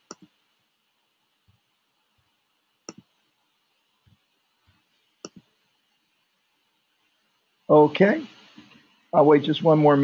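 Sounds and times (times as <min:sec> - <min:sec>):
keyboard clicks: 0:00.0 - 0:00.3, 0:02.9 - 0:03.1, 0:05.2 - 0:05.4.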